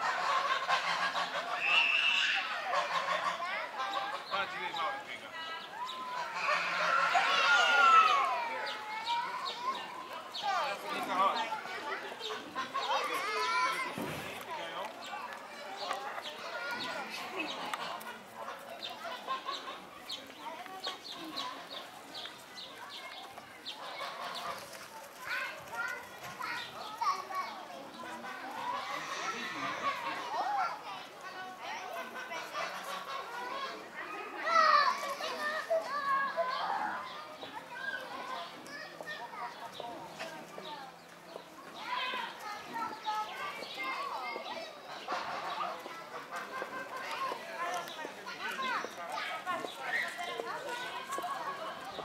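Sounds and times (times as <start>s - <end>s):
children chattering: 0.0s - 52.0s.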